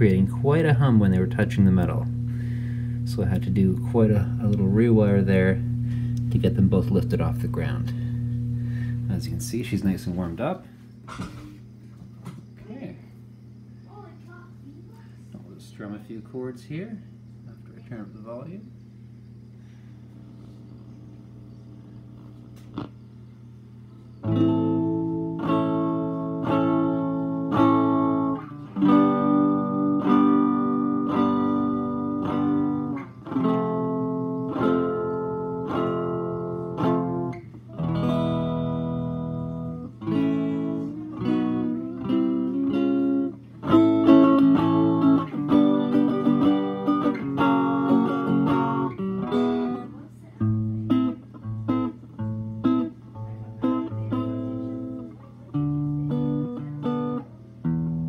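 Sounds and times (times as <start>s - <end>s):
electric guitar strumming chords: 0.0s - 10.6s, 22.1s - 23.0s, 24.2s - 58.0s.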